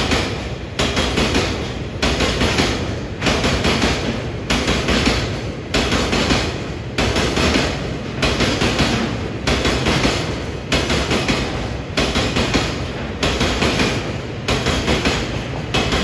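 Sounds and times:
train wheels clattering over rail joints: 0.0 - 16.0.

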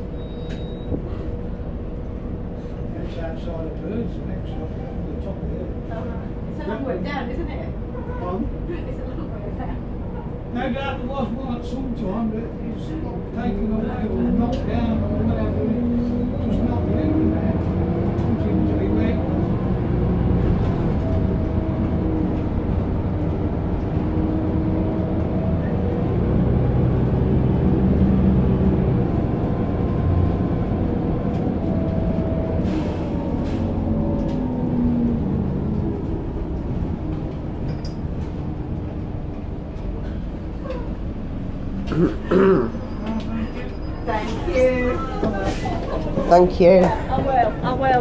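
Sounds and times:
bus engine rumble: 0.0 - 48.0.

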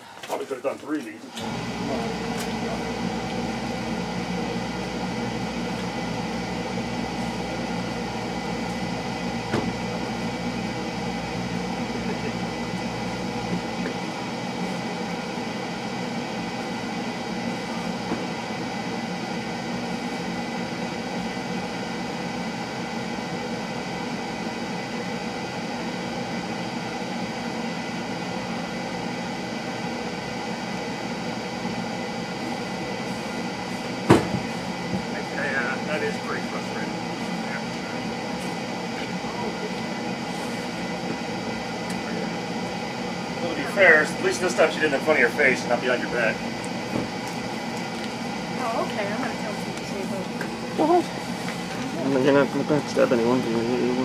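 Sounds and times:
steady mechanical hum: 0.0 - 54.0.

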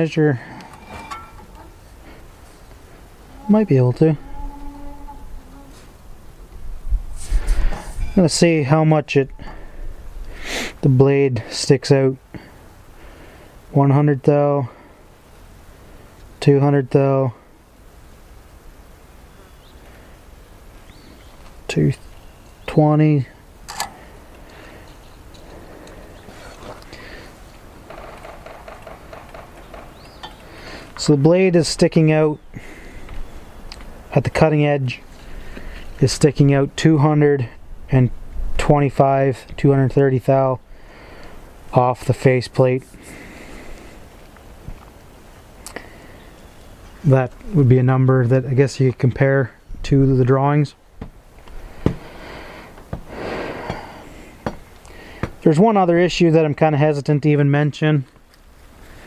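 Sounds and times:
man breathing: 0.3 - 3.1, 9.4 - 10.8, 12.3 - 13.6, 23.8 - 27.5, 30.4 - 31.0, 32.5 - 33.3, 35.2 - 36.0, 40.7 - 41.5, 42.9 - 44.1, 45.6 - 46.3, 51.5 - 55.4.

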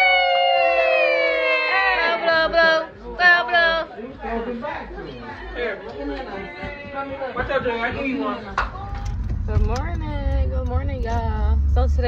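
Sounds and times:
several people chattering: 1.0 - 12.0.

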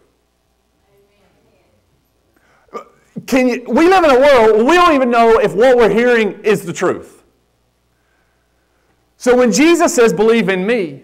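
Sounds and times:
short sharp breath: 2.3 - 2.8, 7.9 - 9.0
man speaking: 2.7 - 7.3, 9.2 - 11.0.

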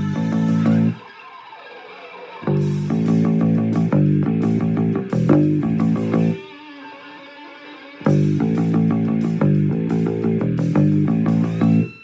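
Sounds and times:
hard rock band with bass: 0.0 - 1.1, 2.4 - 7.2, 8.0 - 12.0.

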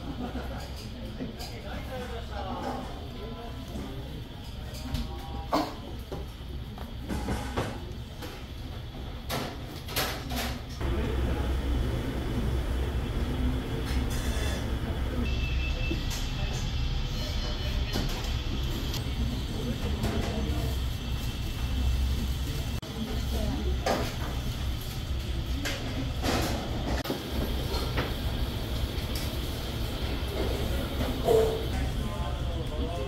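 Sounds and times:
steady low hum: 10.7 - 15.7.

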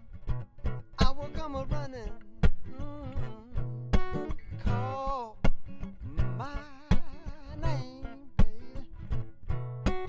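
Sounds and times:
acoustic guitar strummed: 0.0 - 10.0
person singing wordlessly: 1.0 - 9.1.

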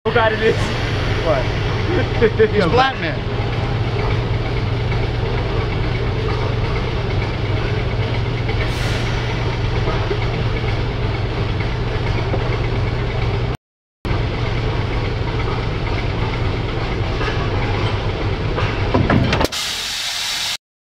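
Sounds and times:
diesel engine running: 0.1 - 19.5.

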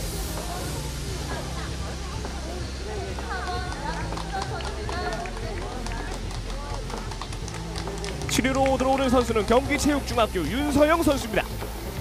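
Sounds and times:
outdoor noise: 0.0 - 12.0.

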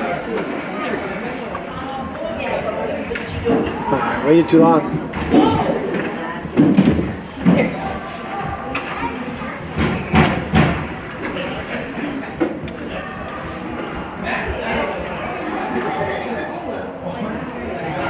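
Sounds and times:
spectators talking: 0.0 - 18.0.

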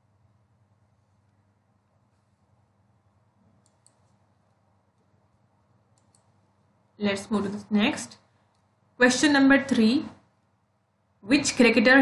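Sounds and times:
faint clicks: 3.6 - 5.1, 5.9 - 6.3.

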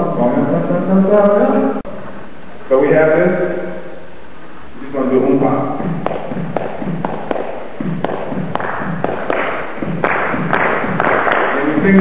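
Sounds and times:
short low beats: 5.2 - 12.0
rhythmic hand claps: 5.8 - 12.0
group clapping: 6.0 - 12.0.

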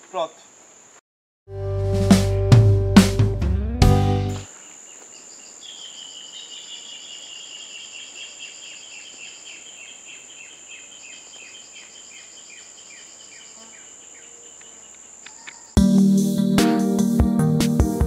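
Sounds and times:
insects droning: 0.0 - 1.0, 4.4 - 15.8.

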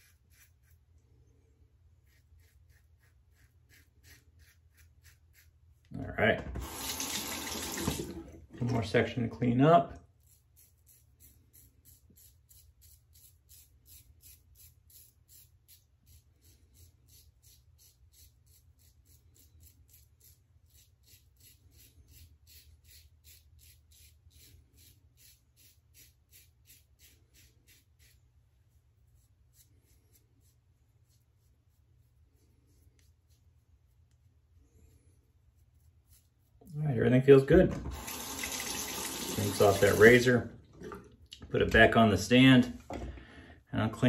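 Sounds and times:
razor scraping stubble: 0.0 - 1.0, 2.0 - 5.9, 10.1 - 34.2, 35.5 - 37.4.

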